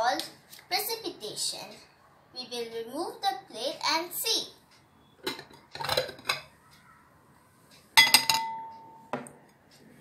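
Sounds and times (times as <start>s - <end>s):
glass plate clinking on glass bowl: 8.0s - 8.7s.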